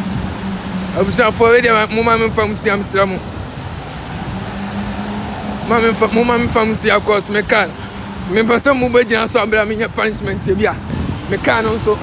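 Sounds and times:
low hum of traffic: 0.0 - 12.0
man talking: 0.9 - 3.3, 5.6 - 12.0.

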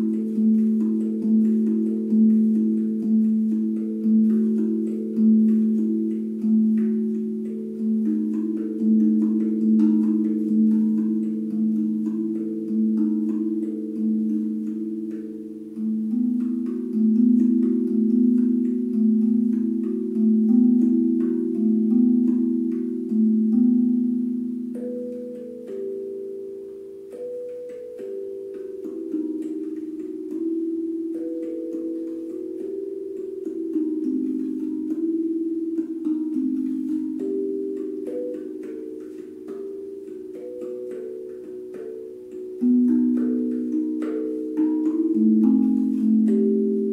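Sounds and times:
handpan melody: 0.0 - 46.9.

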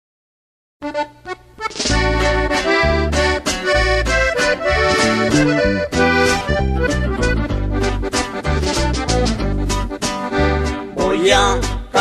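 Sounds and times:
accordion melody: 0.8 - 12.0
rhythmic band backing: 0.8 - 12.0.

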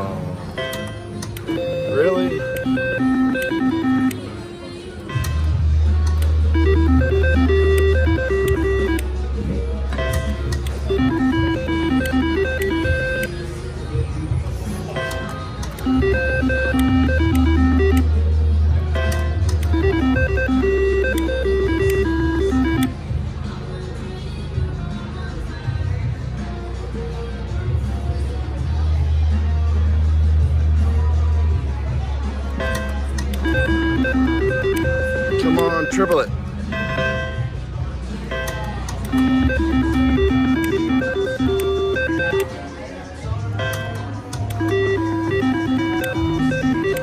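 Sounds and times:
slot machine electronic beeping tune: 0.6 - 4.3, 5.0 - 5.6, 6.4 - 9.2, 10.0 - 13.5, 15.0 - 18.2, 19.0 - 23.0, 32.6 - 37.5, 38.3 - 42.7, 43.6 - 47.0.

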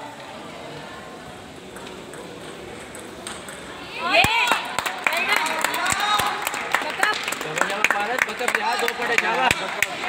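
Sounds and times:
table tennis ball ticking: 1.7 - 4.4.

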